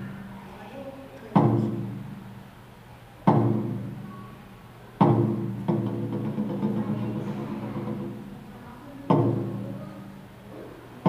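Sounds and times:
taiko drum boom: 1.3s - 2.2s, 3.2s - 4.1s, 5.0s - 8.4s, 9.1s - 9.8s.

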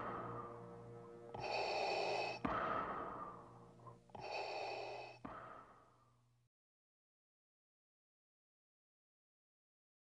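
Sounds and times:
mechanical respirator breathing: 1.3s - 6.0s.

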